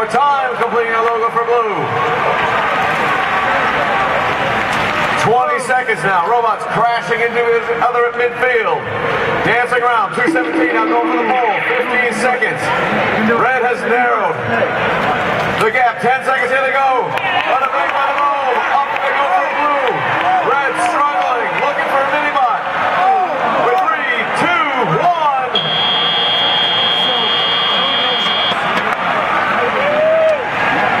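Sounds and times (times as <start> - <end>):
crowd yelling and cheering: 0.0 - 6.4, 8.6 - 31.0
buzzer steady high tone: 25.6 - 28.6.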